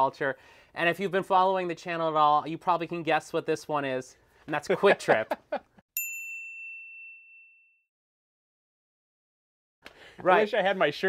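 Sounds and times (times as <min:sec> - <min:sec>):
bright bell-like ding: 0:06.0 - 0:07.9.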